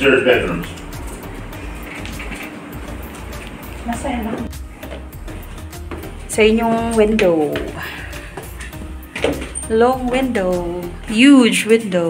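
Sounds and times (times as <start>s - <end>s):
soft music with faint beat: 0.0s - 12.0s.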